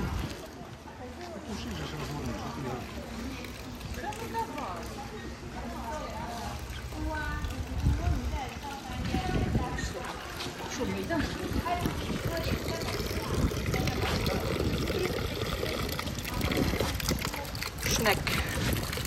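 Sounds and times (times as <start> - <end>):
people talking: 0.0 - 19.0
water trickling from fountain: 0.0 - 19.0
low uneven rumble: 5.6 - 19.0.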